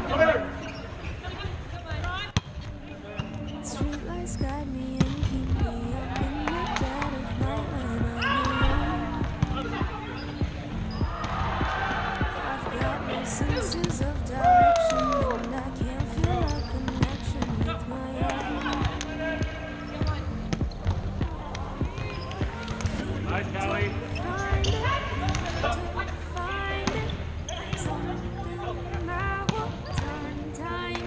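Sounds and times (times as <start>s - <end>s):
background music: 0.0s - 1.2s, 1.8s - 31.0s
players' voices: 0.0s - 31.0s.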